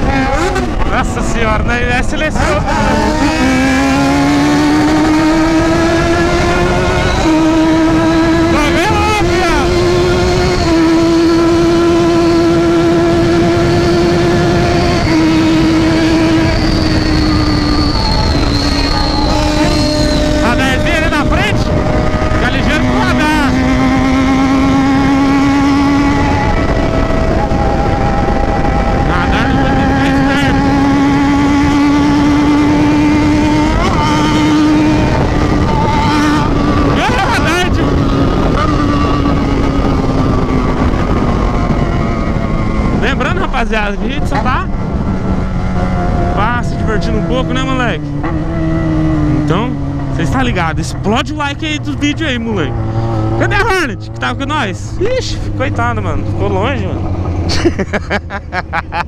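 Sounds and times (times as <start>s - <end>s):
motorcycle engine at high revs: 0.0s - 59.0s
wind rush: 0.0s - 59.0s.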